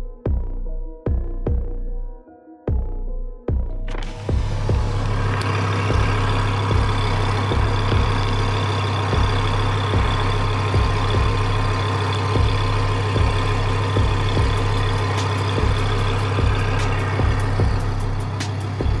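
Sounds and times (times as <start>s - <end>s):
short low thumps: 3.5s - 8.6s, 12.4s - 19.0s
engine running with low hum: 3.7s - 19.0s.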